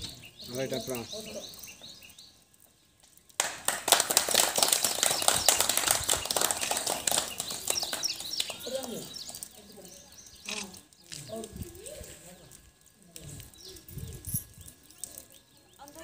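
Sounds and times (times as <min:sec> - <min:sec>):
people clapping: 0:03.3 - 0:09.6.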